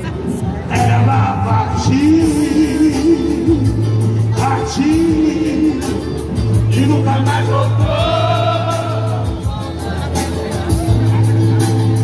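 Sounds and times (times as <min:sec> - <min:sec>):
backing music with low bass: 0:00.0 - 0:12.0.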